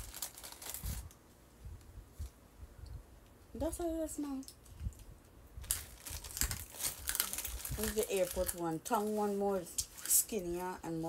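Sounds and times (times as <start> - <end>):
plastic snack packet crinkling: 0.0 - 1.2, 5.6 - 10.6.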